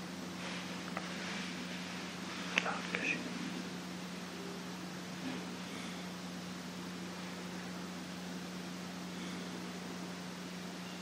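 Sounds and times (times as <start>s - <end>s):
low hum and hiss: 0.0s - 11.0s
person whispering: 2.6s - 3.4s.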